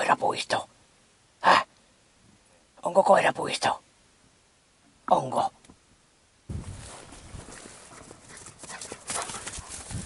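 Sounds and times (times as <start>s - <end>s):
dog paws thudding on grass: 6.5s - 10.0s.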